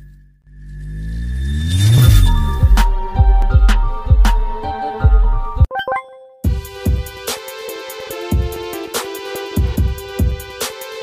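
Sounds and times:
music hit: 0.0 - 5.7
descending synth sweep: 0.4 - 4.6
rising synth riser: 0.4 - 4.6.

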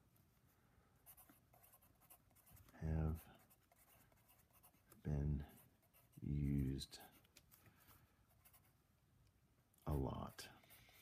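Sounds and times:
pencil scratching on paper: 1.0 - 8.8.

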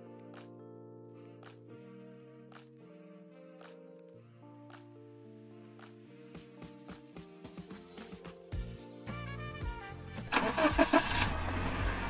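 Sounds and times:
car engine cranking: 10.3 - 12.0
car engine running: 10.3 - 12.0.

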